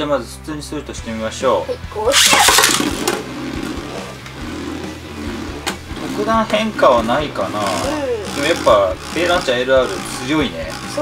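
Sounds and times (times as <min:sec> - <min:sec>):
spinning top whirring: 0:02.1 - 0:11.0.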